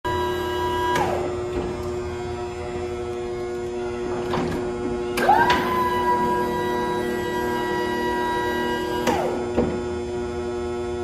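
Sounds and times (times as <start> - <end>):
floor jack motor whining: 0.1 - 11.0
hum: 0.1 - 11.0.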